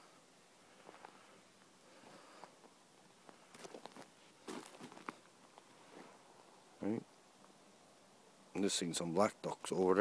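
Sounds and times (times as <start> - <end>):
footsteps on snow: 3.4 - 6.2.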